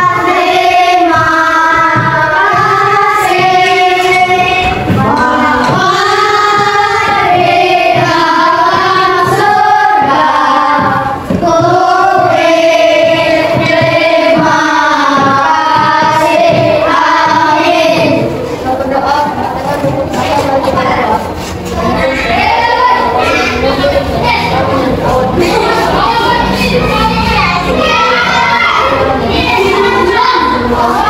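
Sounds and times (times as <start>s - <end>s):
children singing: 0.0s - 31.0s.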